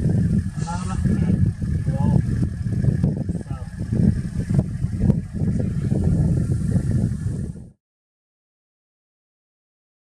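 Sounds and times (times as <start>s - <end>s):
vehicle engine idling: 0.0s - 7.8s.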